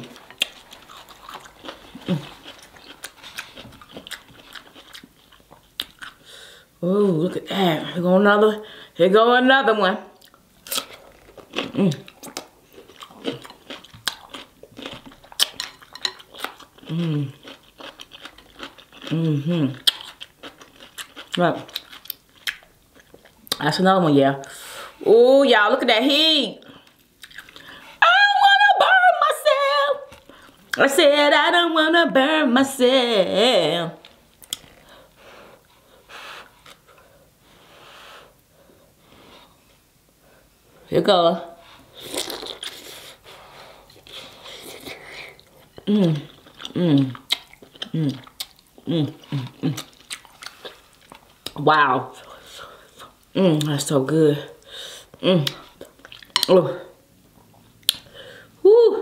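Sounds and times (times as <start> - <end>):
person chewing crab meat: 0.0 - 6.4, 10.2 - 23.6, 26.7 - 27.8, 34.0 - 37.1, 41.8 - 51.6, 54.6 - 56.6.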